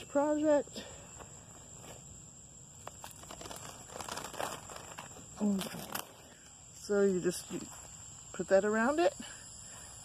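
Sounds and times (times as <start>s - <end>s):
cicadas droning: 0.0s - 10.0s.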